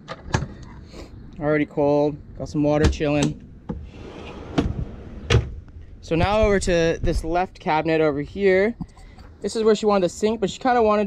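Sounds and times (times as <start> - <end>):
drawer sliding on slides: 3.7 - 5.4.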